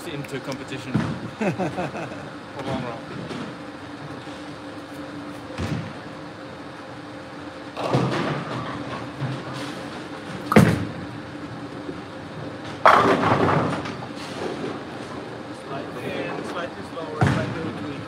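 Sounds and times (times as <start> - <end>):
bowling ball rumble: 7.7 - 15.4, 17.1 - 18.0
bowling pins crashing: 7.8 - 9.5, 10.3 - 11.1, 12.8 - 14.8
bowling ball thud on lane: 10.4 - 11.0, 12.8 - 13.8.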